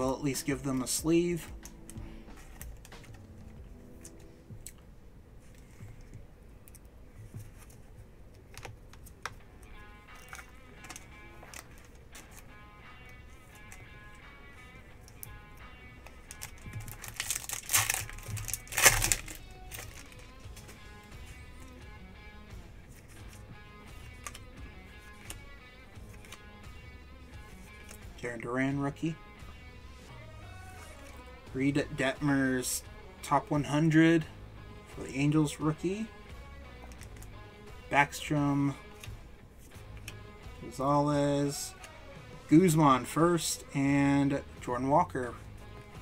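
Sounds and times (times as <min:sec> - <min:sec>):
quiet background music: 0:00.0 - 0:46.0
cards clicking when handled: 0:00.8 - 0:03.2, 0:16.0 - 0:20.8, 0:22.9 - 0:26.8, 0:27.4 - 0:28.1, 0:36.8 - 0:37.3
foil wrapper crinkling and tearing: 0:16.2 - 0:20.4.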